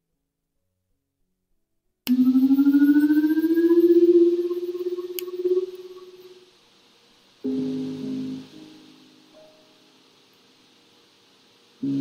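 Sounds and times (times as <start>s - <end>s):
sustained tone gliding upward: 2.1s - 6.5s.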